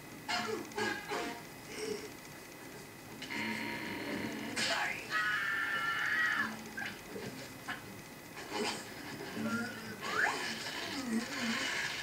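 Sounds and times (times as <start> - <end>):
cartoon soundtrack from television: 0.0 - 12.0.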